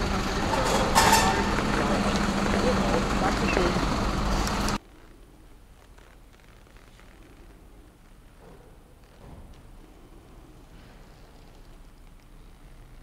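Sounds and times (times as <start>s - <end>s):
people talking: 0.0s - 4.0s
truck engine idling: 0.0s - 4.8s.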